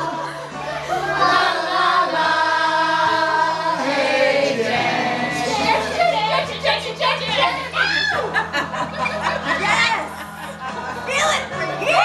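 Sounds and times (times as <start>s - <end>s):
group of men and women singing: 0.0s - 6.6s.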